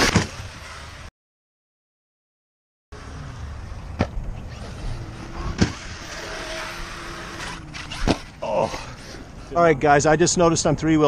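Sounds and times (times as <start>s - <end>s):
rc truck driving over dirt: 0.0s - 1.1s, 3.0s - 10.8s
faint motor whine: 3.0s - 9.6s.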